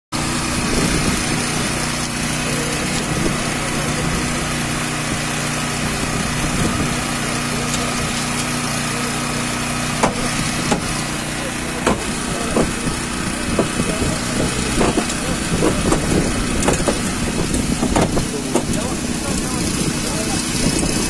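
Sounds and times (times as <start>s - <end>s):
engine running steadily: 0.2s - 21.0s
faint voices: 0.2s - 21.0s.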